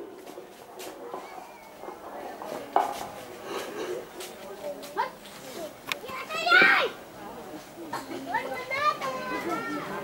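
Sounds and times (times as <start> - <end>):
children calling out: 6.0 - 7.0, 8.2 - 10.0.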